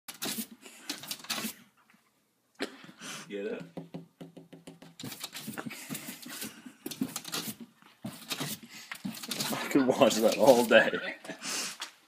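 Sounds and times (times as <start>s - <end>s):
dog claws scratching glass door: 6.9s - 10.6s.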